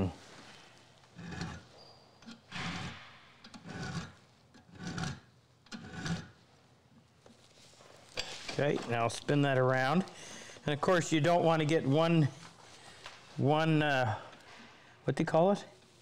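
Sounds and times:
hand file strokes on steel: 2.3 - 6.3.

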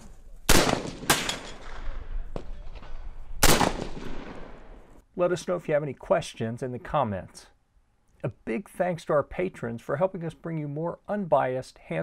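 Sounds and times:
fainter gunshot: 0.5 - 4.8
rifle shots with echo: 0.5 - 4.9.

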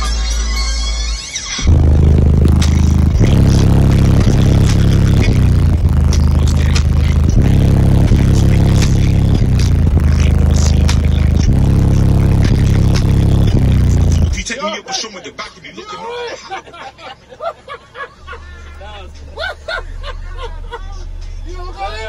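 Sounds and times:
bass-heavy music playing loud: 0.0 - 14.5, 18.3 - 22.0.

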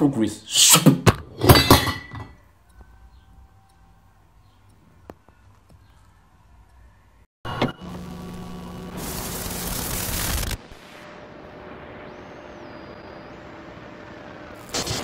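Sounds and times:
rush of static-like noise: 7.8 - 15.0.

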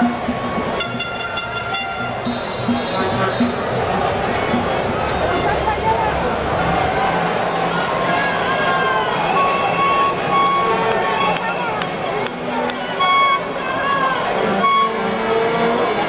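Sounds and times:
noisemaker high toots: 0.0 - 5.6, 8.3 - 16.0
crowd talking and calling out: 0.0 - 16.0.

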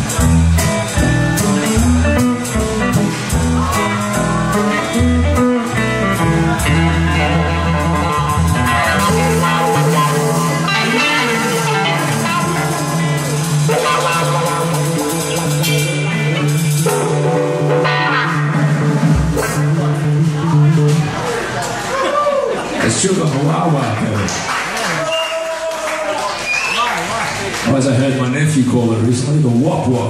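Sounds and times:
drum kit: 0.0 - 22.2
electric guitars: 0.0 - 22.9
upright bass: 0.0 - 24.2.

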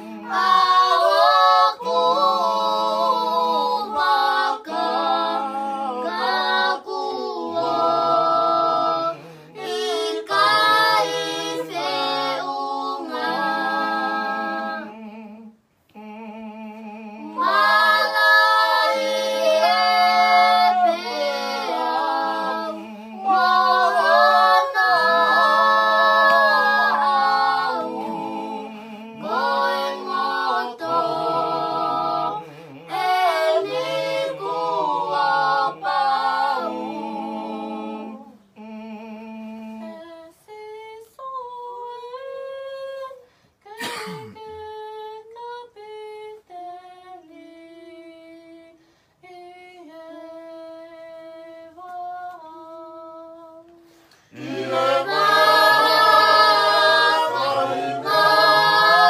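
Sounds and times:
group singing long low notes: 0.0 - 43.2, 44.8 - 59.0.

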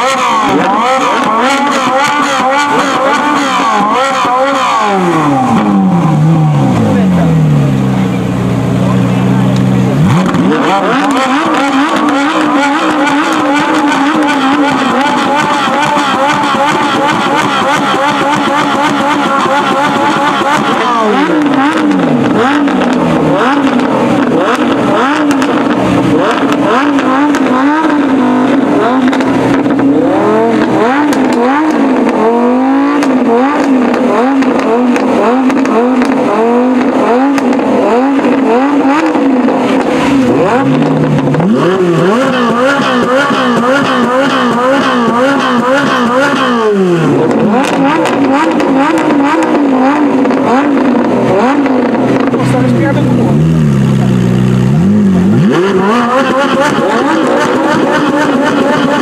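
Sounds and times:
car engines revving: 0.0 - 59.0.

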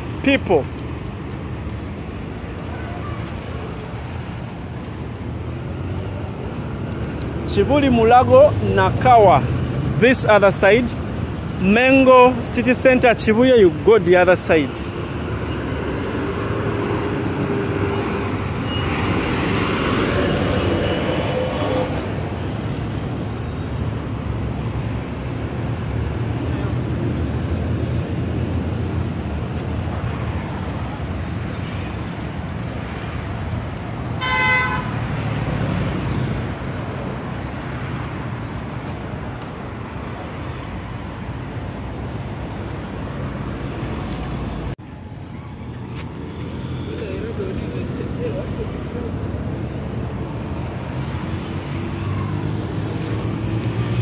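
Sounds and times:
motorcycles and cars passing: 0.0 - 44.8, 45.6 - 54.0
short horn toot: 34.2 - 34.9.

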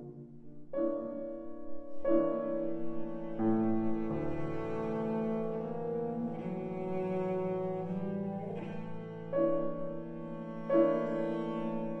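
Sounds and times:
low bowed strings chords: 2.5 - 12.0.

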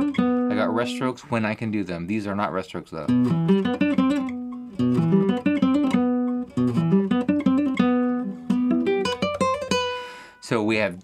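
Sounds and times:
fingerstyle classical guitar arpeggios: 0.0 - 1.0, 3.1 - 10.0.

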